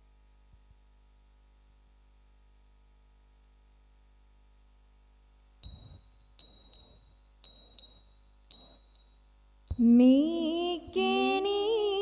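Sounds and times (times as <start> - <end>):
small metal bell ringing: 5.6 - 9.4.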